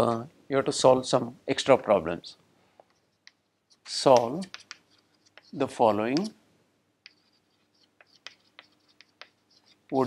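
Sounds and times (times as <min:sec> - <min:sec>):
chalk tapping and scratching: 0:02.8 - 0:06.4, 0:07.0 - 0:10.0.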